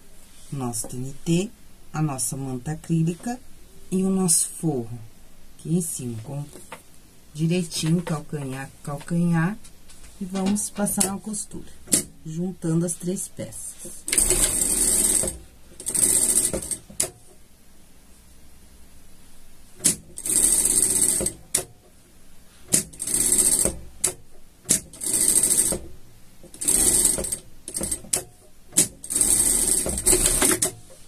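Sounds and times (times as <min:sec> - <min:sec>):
sewing machine stitching: 0:14.1 - 0:16.9, 0:19.8 - 0:21.4, 0:22.7 - 0:24.1, 0:24.7 - 0:25.9, 0:26.5 - 0:30.8.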